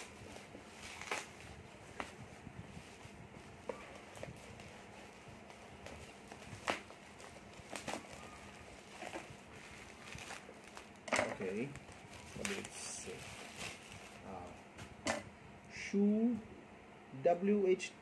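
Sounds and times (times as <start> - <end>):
bubble wrap crinkling: 0.0 - 14.6
utility knife cutting bubble wrap: 0.8 - 1.4.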